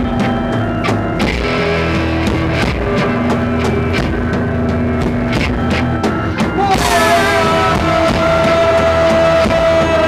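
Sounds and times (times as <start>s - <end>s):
live rock band playing: 0.0s - 10.0s
high held note: 1.4s - 10.0s.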